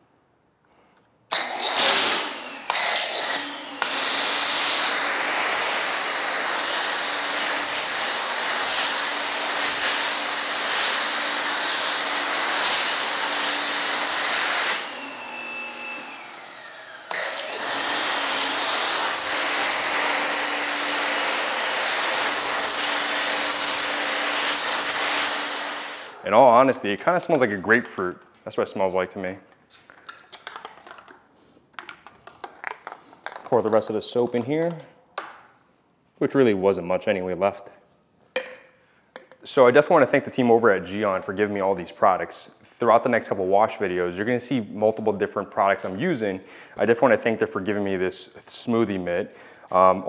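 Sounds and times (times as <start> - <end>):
pressure washer motor hum: 1.3 - 26.8
foam jet hissing: 1.6 - 16.3, 17.3 - 26.2.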